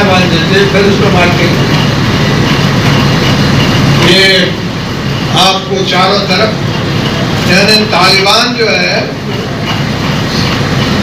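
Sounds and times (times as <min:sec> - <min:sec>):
crowded hall hubbub: 0:00.0 - 0:11.0.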